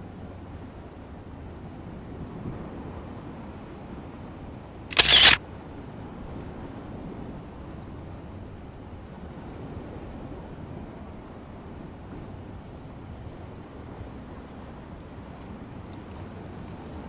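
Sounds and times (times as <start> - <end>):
outdoor background noise: 0.0 - 17.0
camera shutter click: 4.9 - 5.4.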